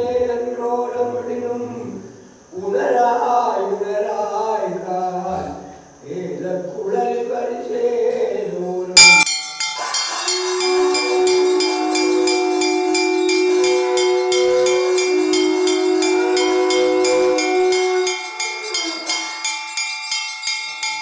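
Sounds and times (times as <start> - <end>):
horn-like held tone: 9.0 - 9.3, 10.4 - 19.3
loud strike: 9.0 - 9.3
bells ringing rapidly: 9.0 - 21.0.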